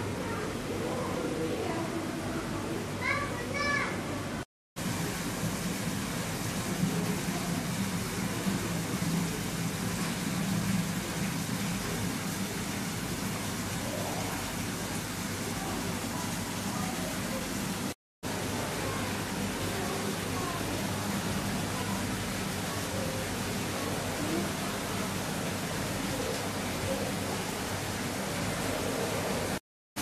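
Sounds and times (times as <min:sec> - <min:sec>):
faint voices: 0:00.0 - 0:04.4, 0:18.5 - 0:27.7
high-pitched child-like voice: 0:00.0 - 0:04.4
steady hiss and low hum: 0:00.0 - 0:29.6.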